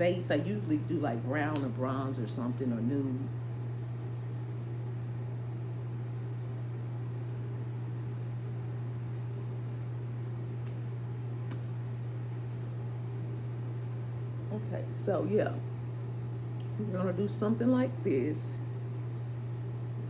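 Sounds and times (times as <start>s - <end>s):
appliance humming and hissing: 0.0s - 20.0s.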